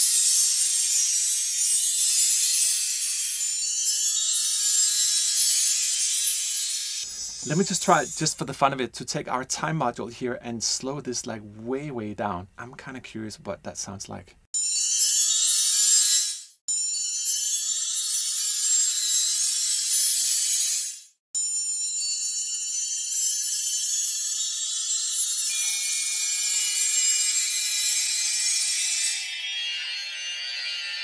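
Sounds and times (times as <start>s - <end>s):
wind chimes ringing: 0.0s - 8.8s, 14.6s - 31.0s.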